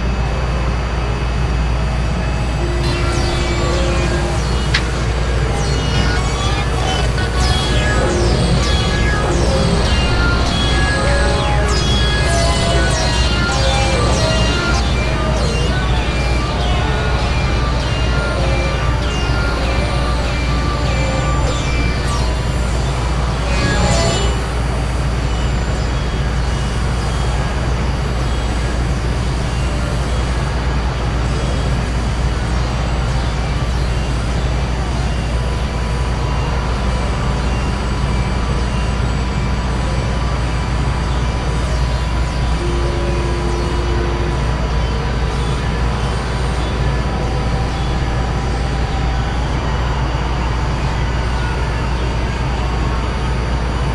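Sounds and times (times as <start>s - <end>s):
low rumble drone: 0.0s - 53.9s
thin held electronic tones: 2.2s - 24.8s.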